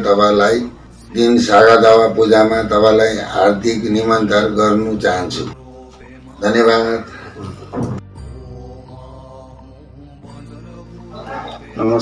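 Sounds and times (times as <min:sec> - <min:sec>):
slow chanted mantra: 0:05.1 - 0:07.5, 0:08.2 - 0:12.0.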